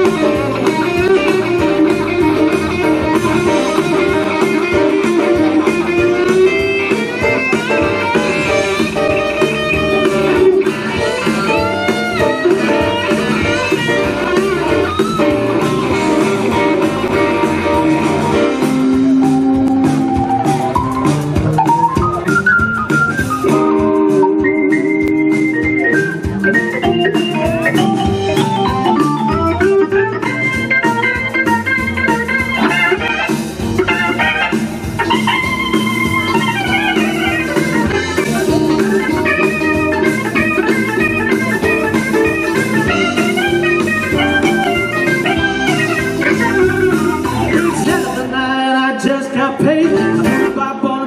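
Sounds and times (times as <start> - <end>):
organ solo: 0.0 - 48.6
drums: 0.0 - 51.0
electric guitar: 0.0 - 51.0.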